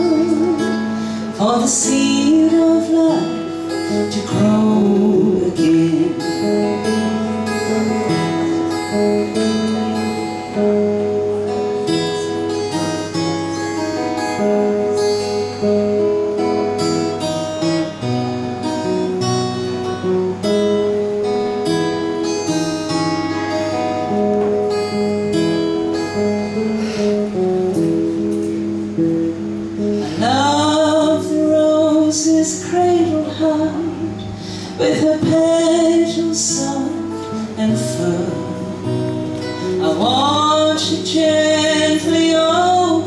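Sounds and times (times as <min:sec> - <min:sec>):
acoustic guitar playing: 0:00.0 - 0:43.0.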